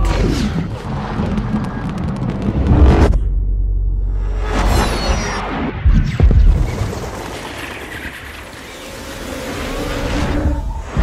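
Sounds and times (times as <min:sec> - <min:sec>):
low rumble: 0:00.0 - 0:06.8.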